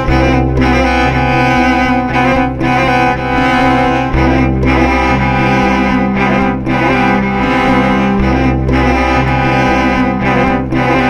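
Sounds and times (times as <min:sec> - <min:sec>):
cello bowed: 0:00.0 - 0:11.0.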